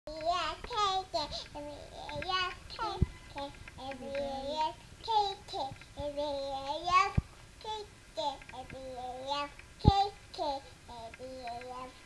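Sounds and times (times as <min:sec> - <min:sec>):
child singing: 0:00.1 - 0:12.0.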